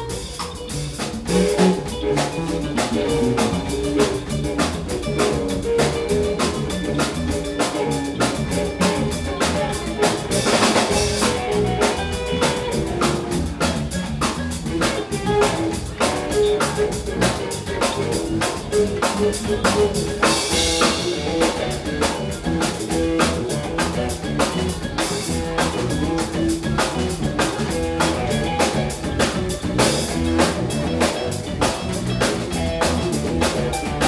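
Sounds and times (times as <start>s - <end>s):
bass guitar: 0.0s - 34.0s
drum kit beat: 0.0s - 34.0s
electric guitar: 0.0s - 34.0s.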